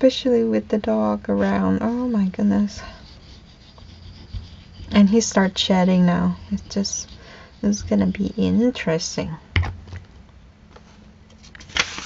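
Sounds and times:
hand rubbing paper page: 1.4s - 9.1s, 11.6s - 12.0s.

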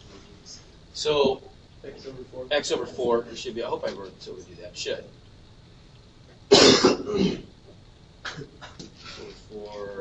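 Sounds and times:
person coughing harshly: 6.5s - 7.5s.

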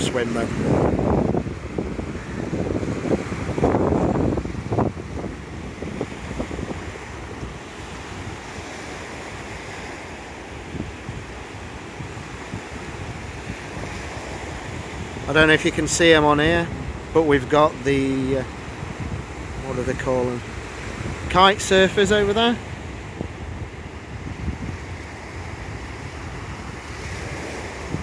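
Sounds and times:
surf breaking on beach: 0.0s - 28.0s
wind buffeting microphone: 0.0s - 28.0s.

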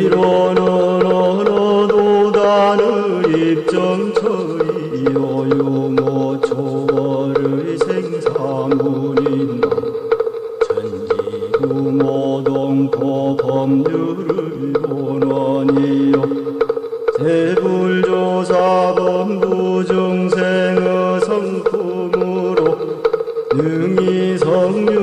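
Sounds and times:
light percussive ticks: 0.0s - 25.0s
person chanting: 0.0s - 25.0s
steady drone tone: 0.0s - 25.0s.

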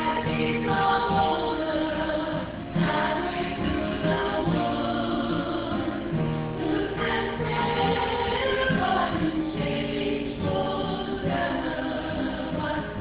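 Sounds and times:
choir singing a hymn: 0.0s - 13.0s.

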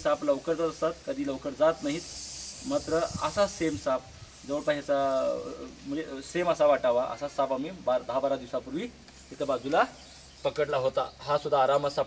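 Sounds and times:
snake hissing: 0.0s - 6.4s
man talking: 0.0s - 12.0s.

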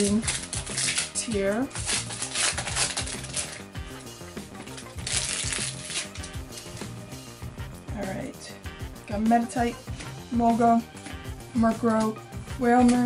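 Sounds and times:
foil wrapper crinkling: 0.0s - 7.0s
background music: 0.0s - 13.0s.

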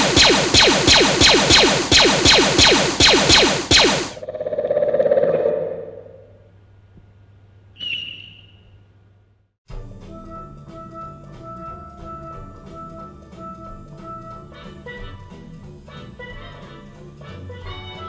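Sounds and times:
blaster fire: 0.0s - 6.3s
pulsing tone: 0.1s - 6.4s
high chirp: 7.8s - 8.8s.

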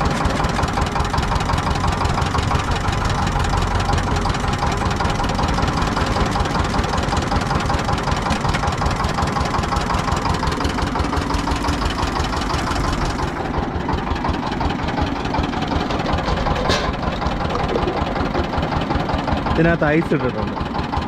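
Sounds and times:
small engine running steadily: 0.0s - 21.0s
crusher rollers pressing cane: 16.0s - 17.1s.

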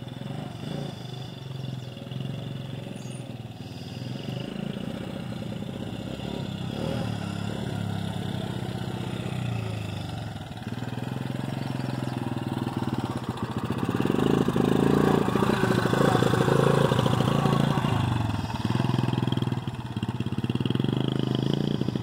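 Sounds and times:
small quad bike engine running: 0.0s - 22.0s.

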